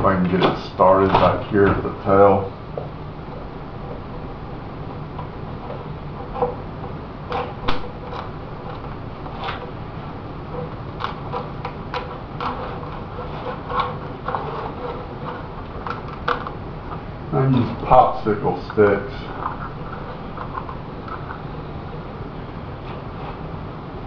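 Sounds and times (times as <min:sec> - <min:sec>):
steady background hum: 0:00.0 - 0:24.0.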